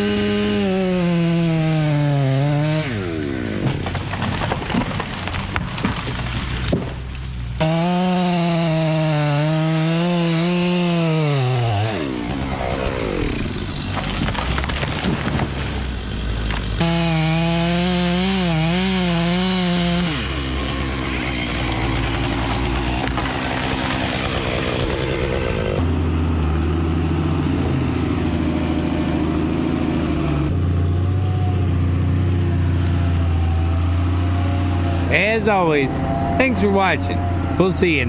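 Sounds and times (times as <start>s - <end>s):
chainsaw running at high revs: 0.0s - 4.2s, 7.6s - 14.8s, 15.4s - 26.6s, 33.9s - 38.0s
diesel engine running: 11.6s - 38.0s.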